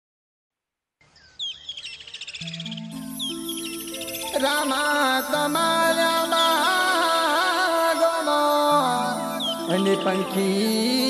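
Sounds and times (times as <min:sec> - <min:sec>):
birds chirping and trilling: 0:01.0 - 0:11.0.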